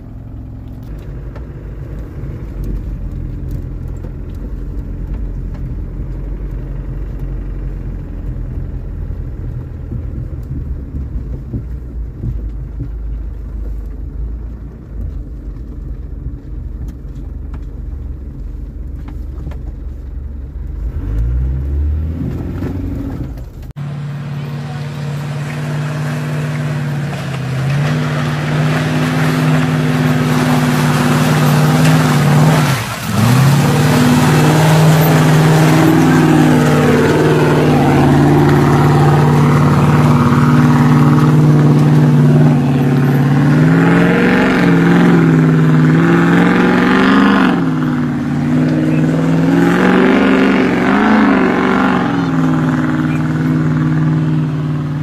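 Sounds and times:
off-road vehicle engine rumble: 0:00.0 - 0:55.0.

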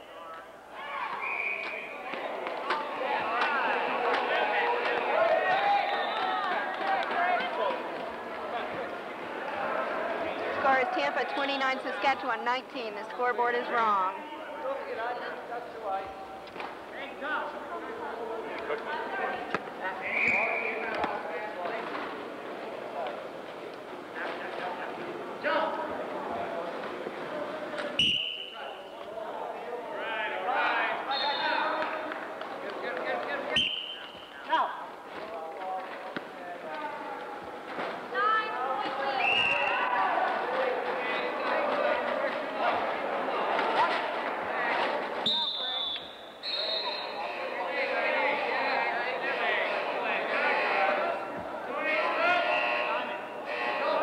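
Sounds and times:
players' indistinct voices: 0:00.0 - 0:54.0.

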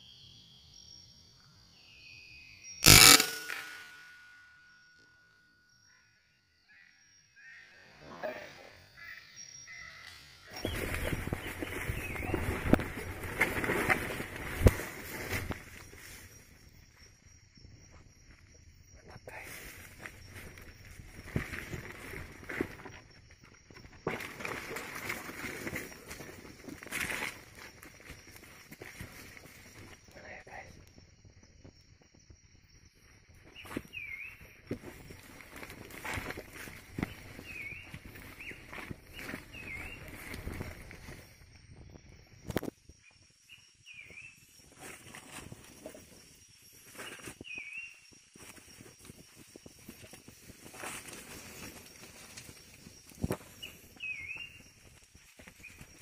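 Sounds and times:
insect chirping: 0:00.0 - 0:56.0
rifle shot: 0:02.8 - 0:04.0
rustling of leaves and brush: 0:10.5 - 0:16.6, 0:19.3 - 0:23.2, 0:24.1 - 0:29.9, 0:34.7 - 0:41.4, 0:44.4 - 0:56.0
footsteps through undergrowth: 0:10.6 - 0:16.2, 0:33.5 - 0:41.4, 0:48.4 - 0:56.0.

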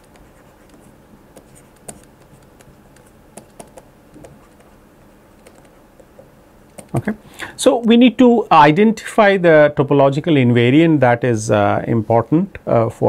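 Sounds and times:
stylus tapping on pen tablet: 0:00.0 - 0:04.7.

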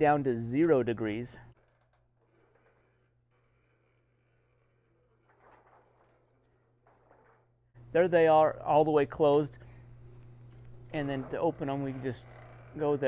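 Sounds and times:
low steady hum: 0:00.0 - 0:13.0
louvers sliding and scraping: 0:10.3 - 0:13.0.

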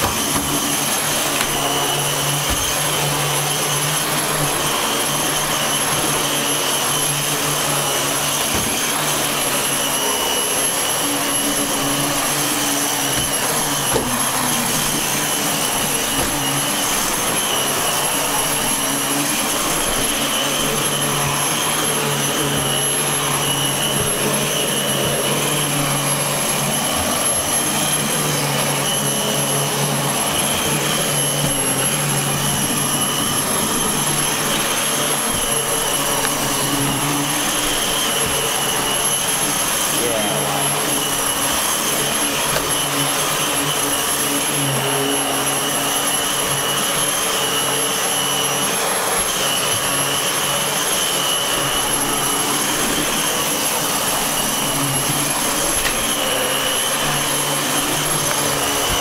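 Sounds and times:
vacuum cleaner running on carpet: 0:00.0 - 0:59.0.

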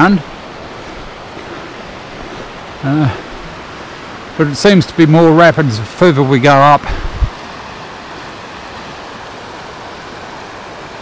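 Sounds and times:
water rushing over rapids: 0:00.0 - 0:11.0.

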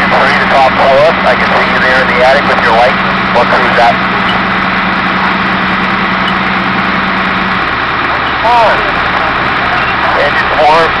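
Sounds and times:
fire engine drone: 0:00.0 - 0:11.0
voices: 0:00.0 - 0:11.0.

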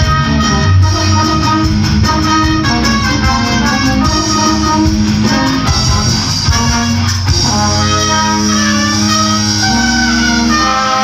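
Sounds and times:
brass band sustained chord: 0:00.0 - 0:11.0.

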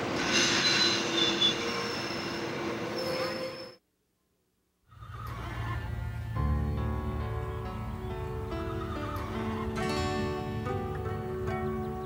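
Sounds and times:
music with held notes and bass: 0:06.0 - 0:12.0.

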